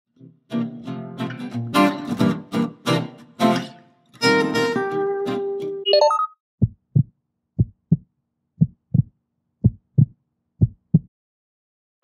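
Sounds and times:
heartbeat thumps: 6.6 - 11.1.

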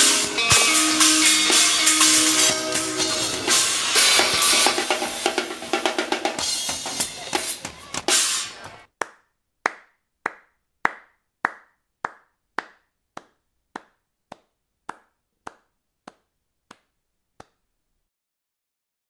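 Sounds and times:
music final hit: 0.0 - 7.0
slow handclap: 8.9 - 17.7.

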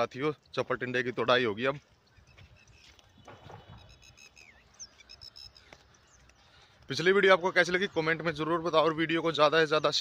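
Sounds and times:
bird chirps and whistle: 2.1 - 5.7
footsteps on soil: 2.2 - 4.1.

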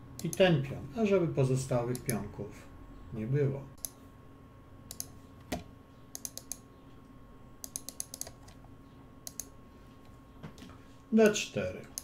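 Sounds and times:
faint steady hum: 0.0 - 12.0
computer keyboard clicks: 4.9 - 6.6, 7.6 - 8.6, 9.2 - 9.5.

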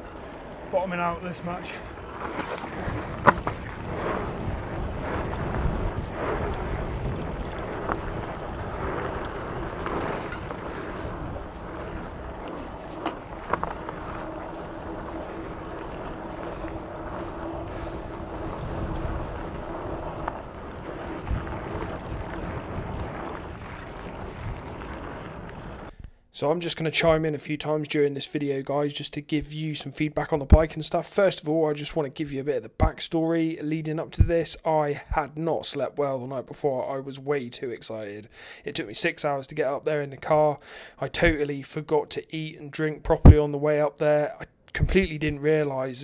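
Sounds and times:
bike rattling: 0.0 - 25.9
bike tyres rolling over dirt: 0.0 - 25.9, 42.7 - 45.9
wind on microphone: 0.0 - 26.0
sharp knocks over bumps: 2.2 - 25.0.

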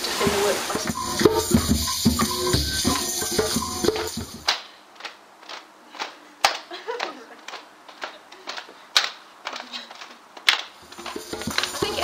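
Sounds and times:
sharp hand claps: 3.9 - 12.0.

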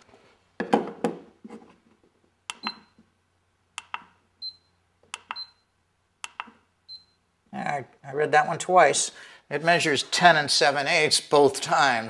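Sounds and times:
button clicks: 6.2 - 6.6.

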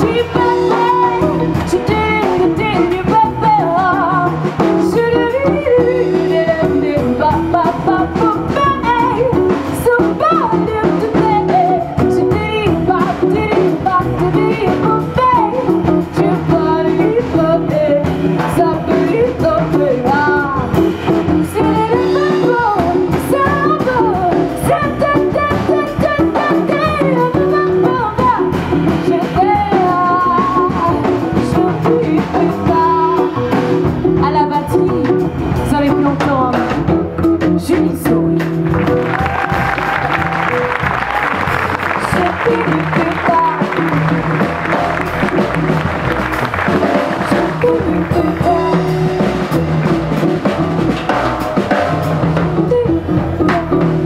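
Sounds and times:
woman singing into a microphone: 0.0 - 38.8, 41.8 - 44.1, 47.1 - 49.6, 52.3 - 54.0
plucked double bass: 0.0 - 54.0.

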